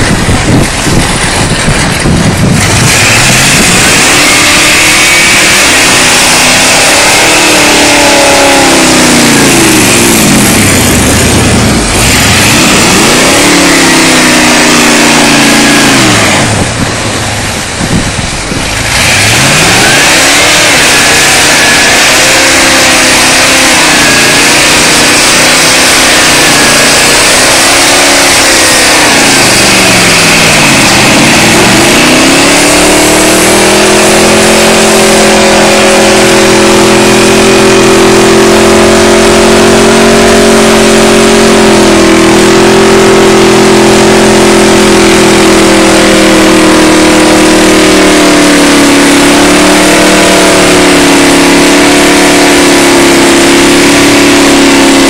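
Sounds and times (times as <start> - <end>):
truck engine revving: 0.0 - 55.0.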